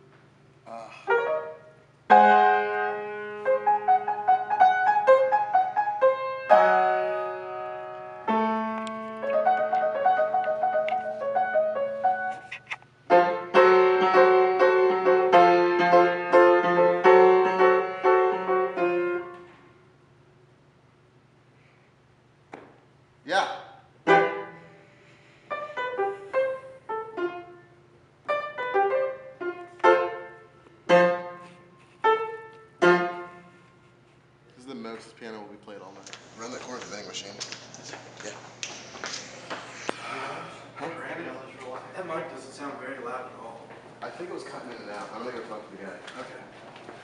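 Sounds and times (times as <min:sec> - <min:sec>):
upright piano chords: 0:00.7 - 0:19.6, 0:24.0 - 0:33.7.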